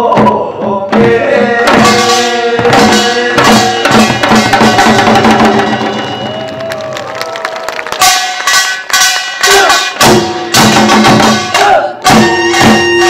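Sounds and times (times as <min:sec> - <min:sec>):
drums and gong ensemble: 0:00.0 - 0:07.2, 0:07.8 - 0:13.0.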